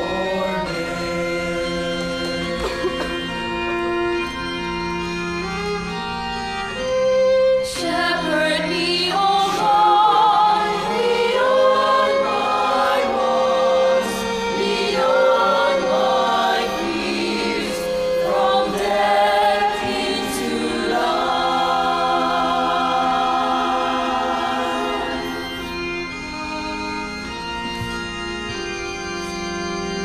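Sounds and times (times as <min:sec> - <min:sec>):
choir singing a hymn: 0:00.0 - 0:03.6, 0:07.6 - 0:27.6.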